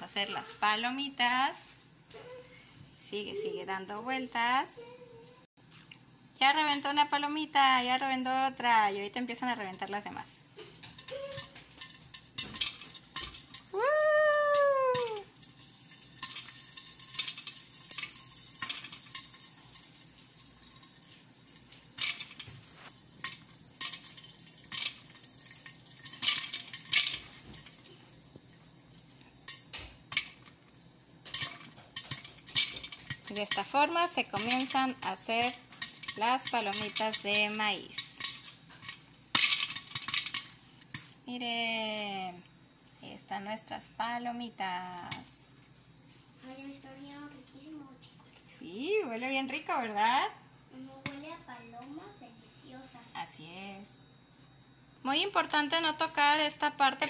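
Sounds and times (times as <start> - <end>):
faint oil sizzle: 0.0 - 57.0
popcorn popping: 5.9 - 42.6.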